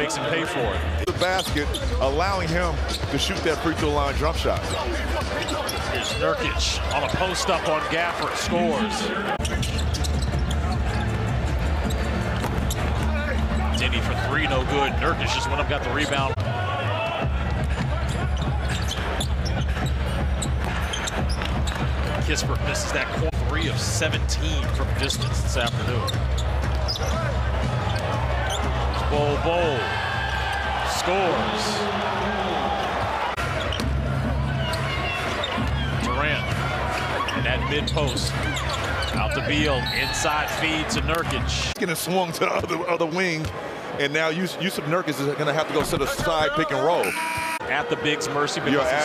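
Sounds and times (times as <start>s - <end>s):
crowd noise: 0.0s - 49.0s
shoe squeaks: 1.3s - 2.1s, 2.8s - 3.3s, 4.6s - 8.4s, 9.3s - 11.2s, 11.8s - 14.0s, 18.0s - 21.9s, 25.0s - 28.7s, 36.9s - 40.7s, 47.0s - 47.6s.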